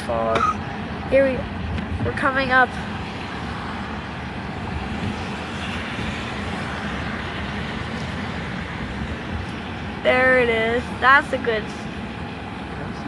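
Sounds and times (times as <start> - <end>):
car road rumble: 0.0 - 13.0
tyres hissing on wet pavement: 2.2 - 12.8.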